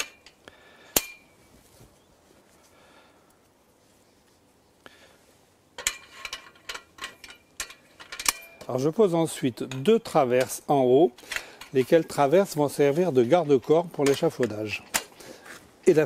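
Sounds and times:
metal scaffold clicks and clinks: 0:00.0 - 0:00.4, 0:05.8 - 0:12.8, 0:13.4 - 0:15.2.

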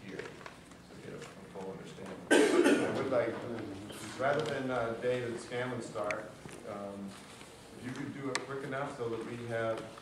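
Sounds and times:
person coughing: 0:02.3 - 0:03.1.

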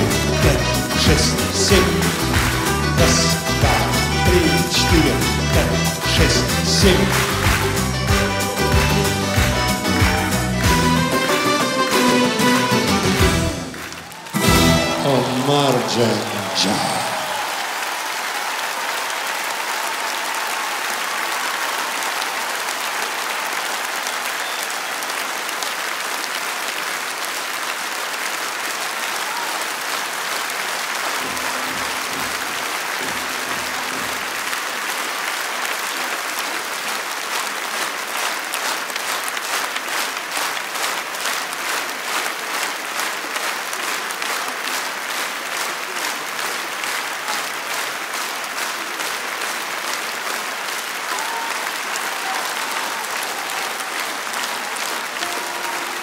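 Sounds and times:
audience applauding: 0:00.0 - 0:56.0.

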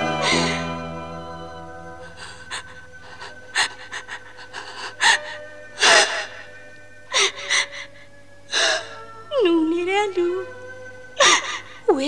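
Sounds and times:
woman gasping and sobbing: 0:00.0 - 0:00.9, 0:01.9 - 0:09.2, 0:11.2 - 0:11.9
soft background music: 0:00.0 - 0:12.0.

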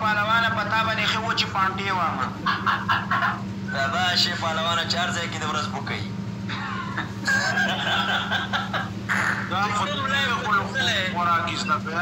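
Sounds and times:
men laughing: 0:02.3 - 0:03.9, 0:06.5 - 0:10.8.

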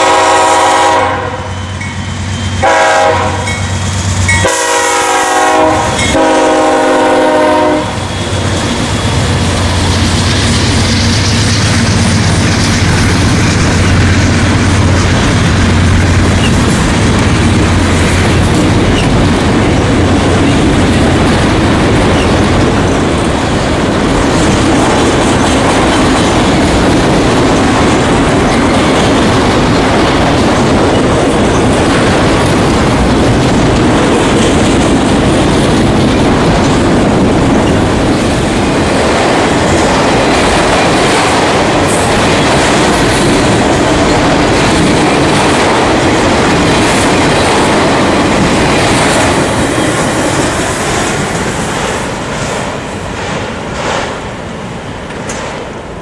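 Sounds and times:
freight train wheels on rails: 0:00.0 - 0:56.0.

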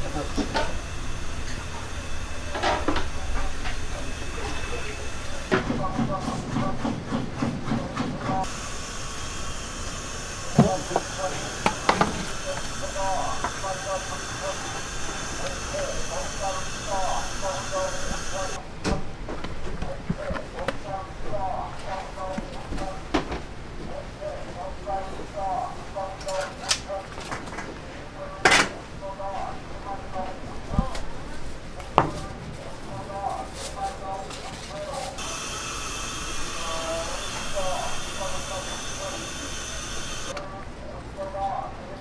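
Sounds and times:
background voices: 0:10.4 - 0:18.6.

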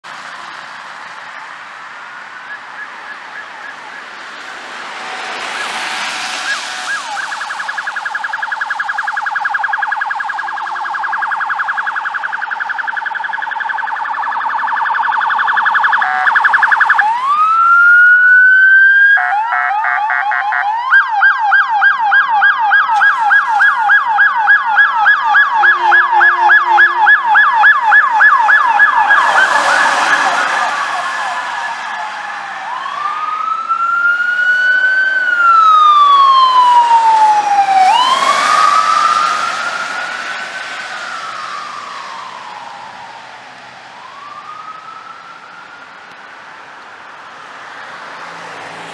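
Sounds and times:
emergency sirens wailing: 0:00.0 - 0:48.9.

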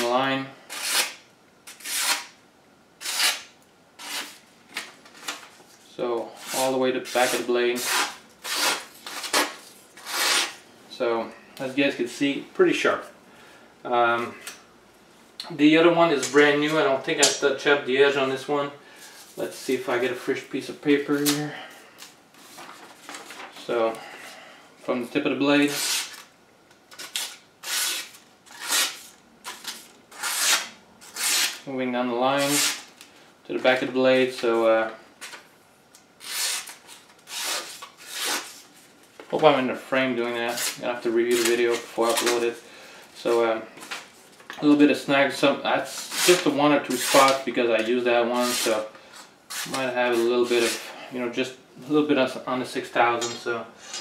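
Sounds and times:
machete slicing paper: 0:00.7 - 0:02.3, 0:03.0 - 0:04.4, 0:26.9 - 0:31.6.

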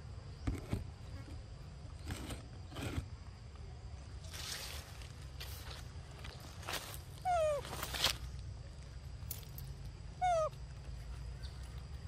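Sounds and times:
macaque meow-like call: 0:10.2 - 0:10.5.

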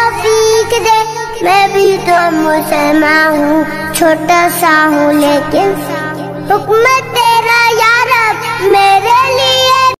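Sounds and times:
child singing: 0:00.0 - 0:10.0.

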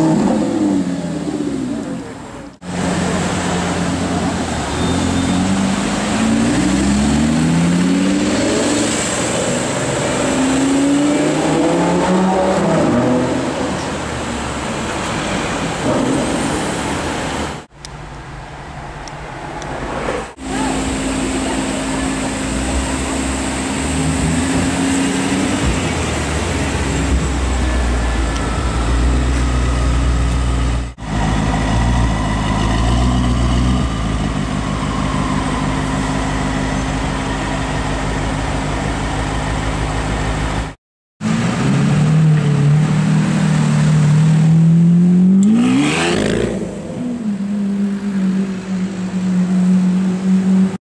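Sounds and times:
car engine revving: 0:00.0 - 0:14.1, 0:20.3 - 0:39.0, 0:41.2 - 0:50.8.

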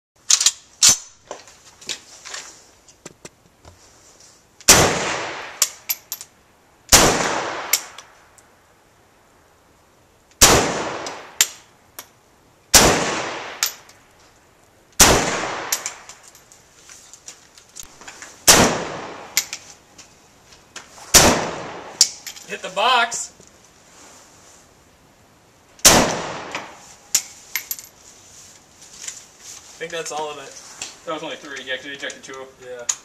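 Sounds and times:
light metallic clinks: 0:05.6 - 0:06.3, 0:15.7 - 0:17.2, 0:22.0 - 0:22.5, 0:26.6 - 0:28.0
rifle shots with ringing tail: 0:12.7 - 0:13.8, 0:15.0 - 0:16.0, 0:18.5 - 0:19.4, 0:21.1 - 0:22.0, 0:25.8 - 0:26.8.

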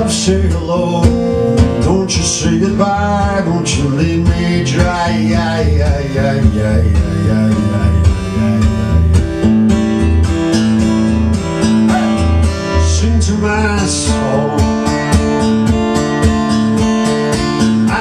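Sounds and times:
acoustic guitar strumming: 0:00.0 - 0:18.0.

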